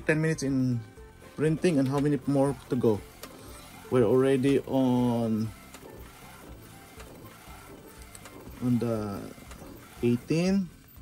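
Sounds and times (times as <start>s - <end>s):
printer mechanical whir: 0.0s - 11.0s
print-head carriage knocking: 1.5s - 10.9s.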